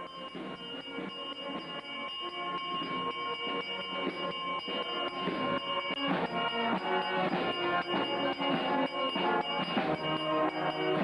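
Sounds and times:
handbell ringing: 0:00.0 - 0:11.0
marching band with drums: 0:00.0 - 0:11.0.

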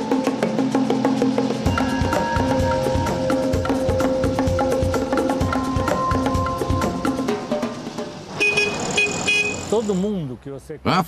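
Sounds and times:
road noise: 0:00.3 - 0:11.0
small car horn beeping: 0:08.4 - 0:09.9
man talking: 0:09.7 - 0:11.0.

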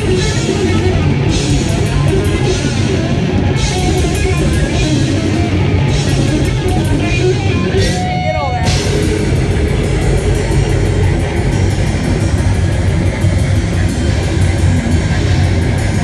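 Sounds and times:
distorted electric guitar riffing: 0:00.0 - 0:16.0
fast drums and cymbals: 0:00.0 - 0:16.0.

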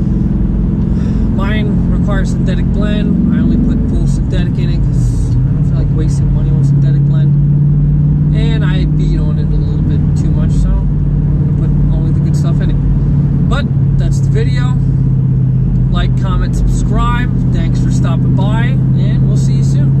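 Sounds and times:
car engine and road drone: 0:00.0 - 0:20.0
man talking: 0:01.0 - 0:07.4, 0:08.3 - 0:10.9, 0:11.6 - 0:12.8, 0:13.5 - 0:14.9, 0:15.8 - 0:20.0.

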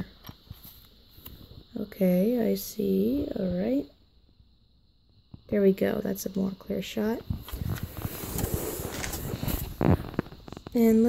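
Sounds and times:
small ticks and crackles: 0:07.2 - 0:11.0
packaging rustling and crinkling: 0:07.3 - 0:10.8.

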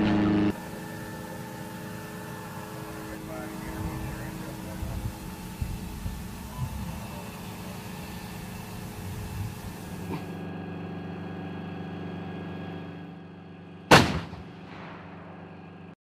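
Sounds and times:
steady many-toned hum: 0:00.0 - 0:16.0
artillery gun blast: 0:13.9 - 0:15.6.

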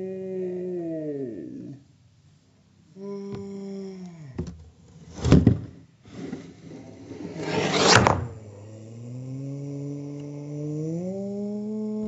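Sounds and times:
scraping rustle: 0:04.9 - 0:08.4
slowed-down deep voice: 0:08.2 - 0:12.0.

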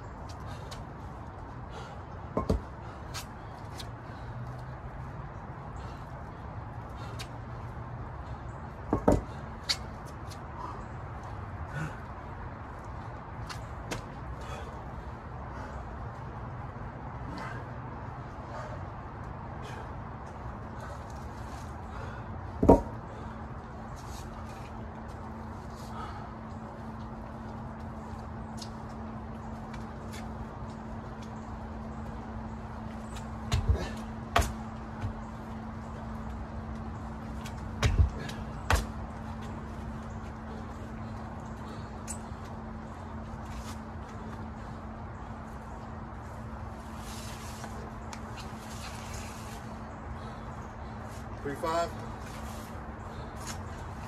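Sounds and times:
steady low hum: 0:00.0 - 0:54.0
dumbbell thuds: 0:22.6 - 0:23.0.

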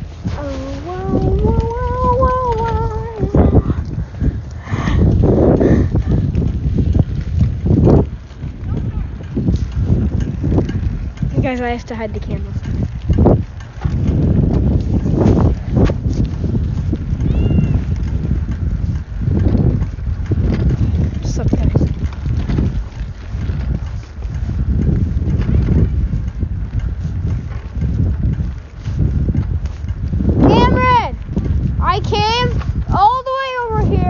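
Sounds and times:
microphone handling rumble: 0:00.0 - 0:34.0
wind on microphone: 0:00.0 - 0:34.0.

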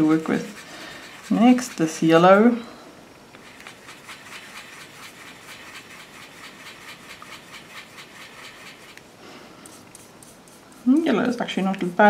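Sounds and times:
brush bristles rasping on paper: 0:00.0 - 0:02.4, 0:03.4 - 0:09.0, 0:09.6 - 0:11.4.

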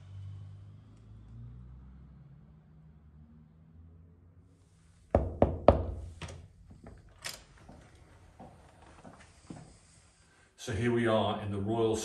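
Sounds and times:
knuckle knocks on a door: 0:05.2 - 0:06.1.

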